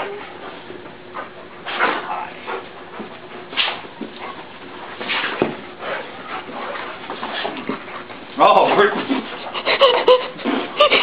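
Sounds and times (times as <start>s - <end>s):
dogs whimpering and whining: 9.2s - 11.0s.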